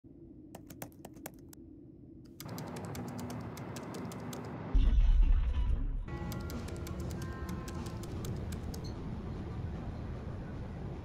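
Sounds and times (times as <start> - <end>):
keyboard typing clicks: 0.6 - 1.6, 2.3 - 4.5, 6.2 - 8.9.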